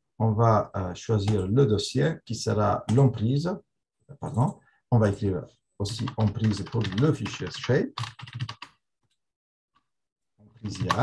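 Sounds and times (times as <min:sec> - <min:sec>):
typing on computer keyboard: 0:05.9 - 0:08.8, 0:10.6 - 0:11.0.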